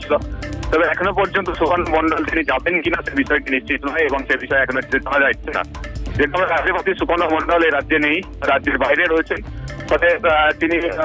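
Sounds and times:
background music: 0.0 - 11.0
person narrating news: 0.0 - 11.0.

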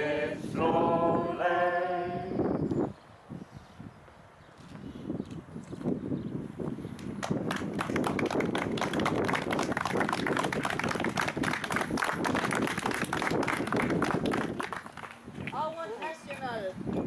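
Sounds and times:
group applauding: 7.1 - 15.2
voices: 15.5 - 16.8.

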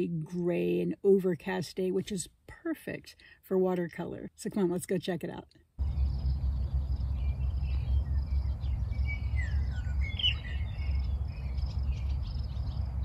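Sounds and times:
small birds chirping: 5.8 - 13.0
wind buffeting microphone: 5.8 - 13.0.

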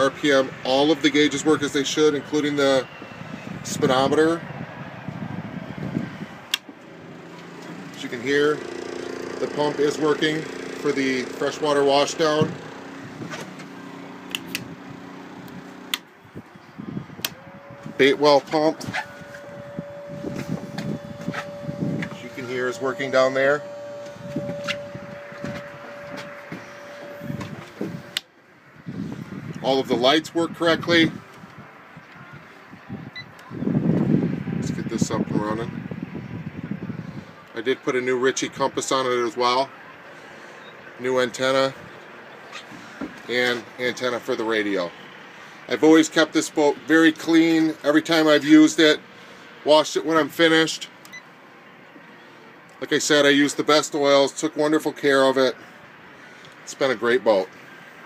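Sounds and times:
low rumbling noise: 10.5 - 30.0
pump humming: 17.2 - 28.2
man speaking: 18.0 - 18.9, 22.1 - 23.8.

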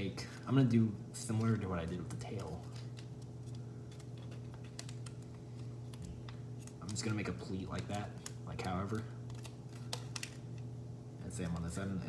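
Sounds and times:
low steady hum: 0.0 - 12.0
paper crinkling and clicking: 0.2 - 10.7, 11.3 - 12.0.

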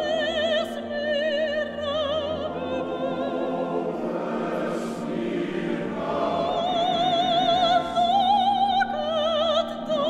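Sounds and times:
choir singing sustained chords: 0.0 - 10.0.

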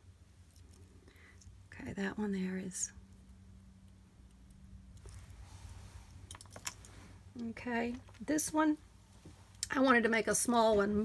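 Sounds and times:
cloth rustling: 5.0 - 7.3.

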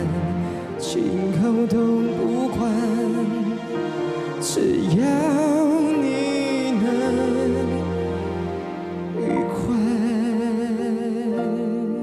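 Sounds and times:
man singing with vibrato: 4.4 - 7.9, 9.2 - 12.0
keyboard chords: 7.8 - 10.6.

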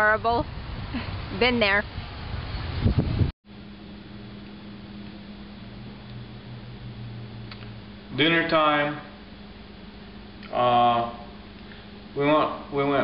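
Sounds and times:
loud outdoor background noise: 0.0 - 8.1
low hum of fan: 0.0 - 13.0.

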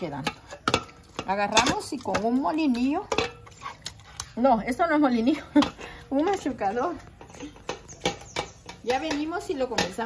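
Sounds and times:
metal knocks against a pot: 0.0 - 3.5, 7.1 - 10.0.

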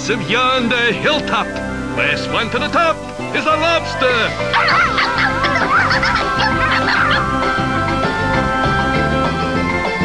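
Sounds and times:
background music: 0.0 - 10.0
cartoon animal wavering calls: 4.5 - 7.8.

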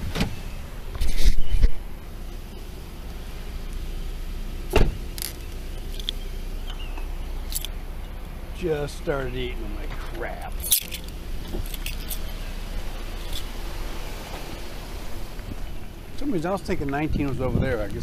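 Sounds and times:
car door shutting: 0.0 - 0.4, 4.7 - 7.7, 10.9 - 12.3
low steady rumble: 0.0 - 18.0
clicks and jingles of belt gear: 5.2 - 6.2, 7.5 - 7.7, 10.4 - 12.3, 13.2 - 13.5.

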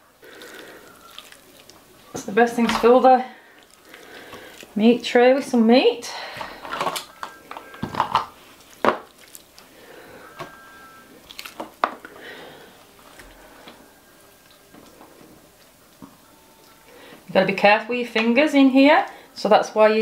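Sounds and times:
meat being handled: 0.3 - 4.8, 11.2 - 12.4.

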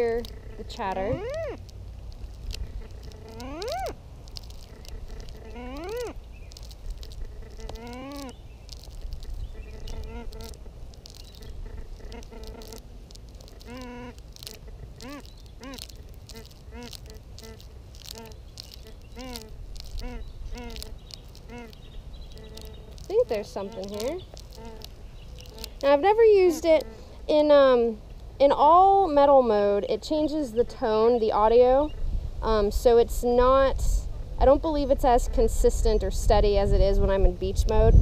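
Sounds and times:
metal detector warbling tones: 0.0 - 1.6, 3.3 - 4.0
metal detector chirps: 3.3 - 3.9.

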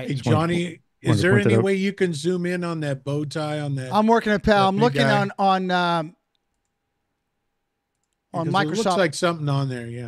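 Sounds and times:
man's voice: 0.0 - 6.1, 8.4 - 10.0.

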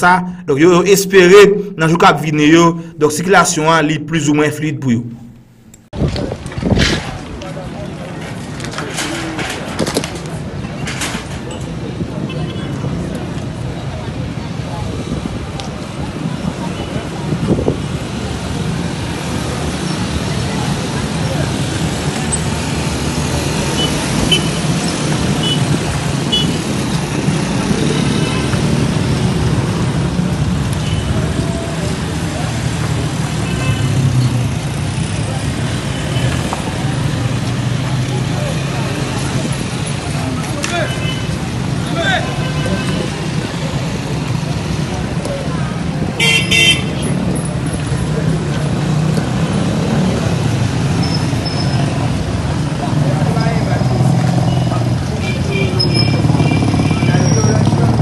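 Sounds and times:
indistinct voices: 0.0 - 5.9
traffic rumble: 0.0 - 58.0
idling motorcycle engines: 42.9 - 58.0
vehicle horn toot: 46.2 - 46.9.

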